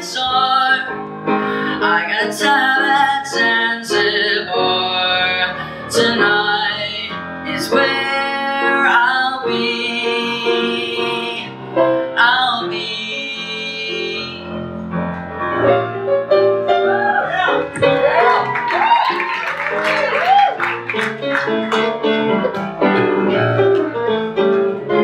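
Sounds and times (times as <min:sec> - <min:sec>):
young man singing: 0:00.0 - 0:00.9, 0:01.8 - 0:11.5
piano chords and runs: 0:00.0 - 0:25.0.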